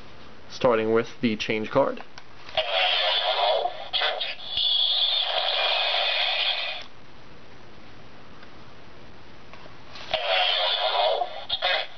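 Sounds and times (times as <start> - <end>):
toy transformation sound effect: 2.6 - 6.9, 10.1 - 11.9.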